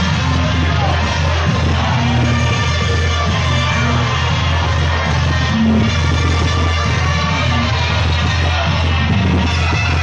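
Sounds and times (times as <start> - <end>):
loud dance music with heavy bass: 0.0 - 10.0.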